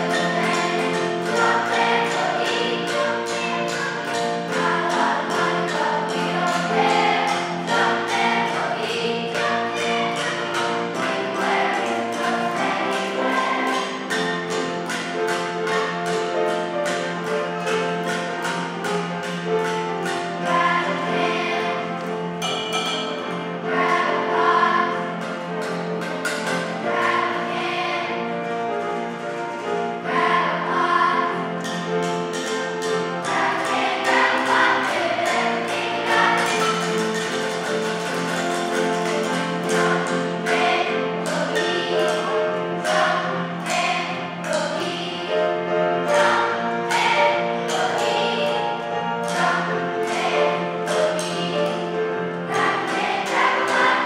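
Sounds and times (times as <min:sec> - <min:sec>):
children's choir singing: 0:00.0 - 0:54.0.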